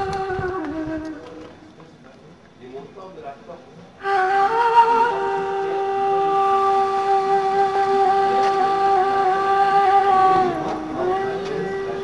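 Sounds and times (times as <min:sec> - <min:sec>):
wind instrument long note: 0:00.0 - 0:01.5, 0:04.0 - 0:12.0.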